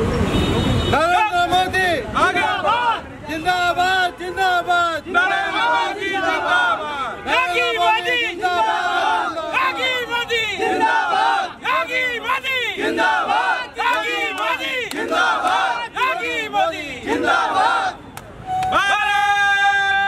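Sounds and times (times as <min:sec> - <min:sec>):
men chanting in unison: 0:02.2 - 0:03.0, 0:04.8 - 0:18.0.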